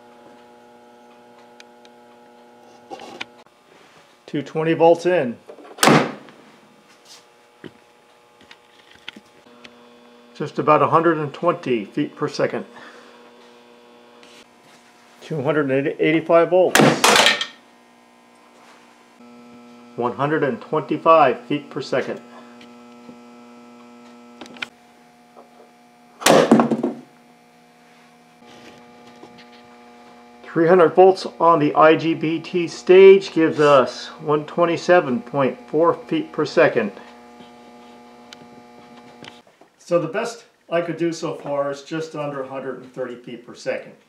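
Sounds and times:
coil gun sharp crack: 5.8 - 6.3, 16.8 - 17.5, 26.2 - 26.7
low steady hum: 6.4 - 40.2.

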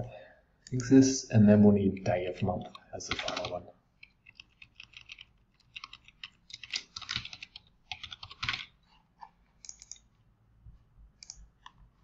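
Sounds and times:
computer keyboard typing: 2.0 - 8.8, 9.6 - 10.1, 11.2 - 12.0.

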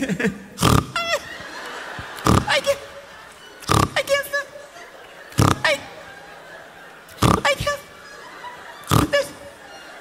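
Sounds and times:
man imitating inhaled laugh: 0.0 - 1.4, 2.0 - 2.8, 5.3 - 6.0, 7.1 - 7.7, 8.8 - 9.4.

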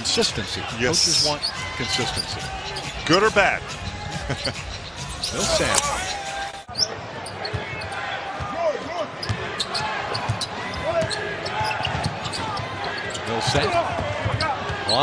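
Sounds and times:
crowd murmur: 0.0 - 15.0
sneakers squeaking: 0.9 - 3.0, 3.6 - 15.0.

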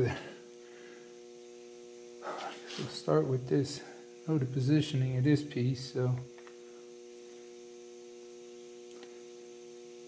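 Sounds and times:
electrical mains hum: 0.0 - 10.0
person speaking: 2.2 - 6.2.

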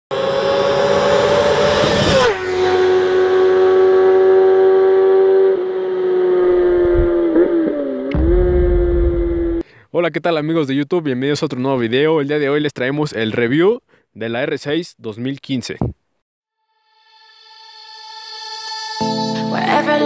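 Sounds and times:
high-revving engine: 0.1 - 9.6
low rumble: 6.5 - 7.4, 8.1 - 9.6.

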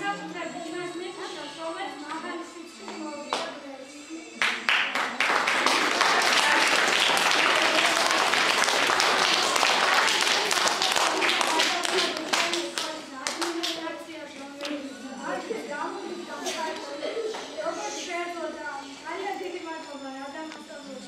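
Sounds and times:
audience applauding: 4.4 - 13.8.

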